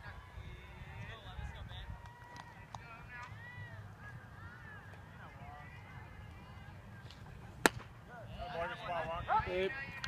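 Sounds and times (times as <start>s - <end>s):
baseball popping into mitt: 7.1s - 7.9s.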